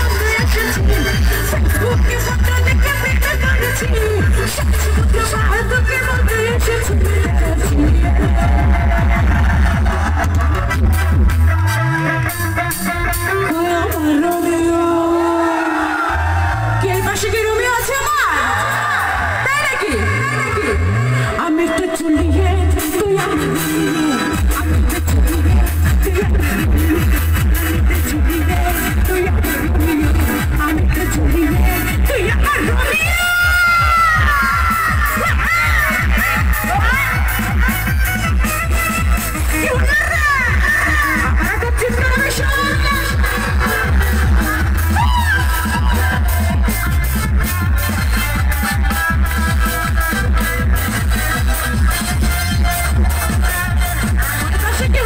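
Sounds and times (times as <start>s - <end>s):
electronic dance music with heavy bass: 0.0s - 55.0s.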